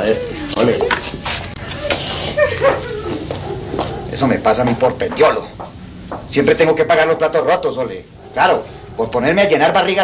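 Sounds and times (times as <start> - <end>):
high whimper: 1.6 - 3.5
woman crying and sniffling: 1.7 - 3.3.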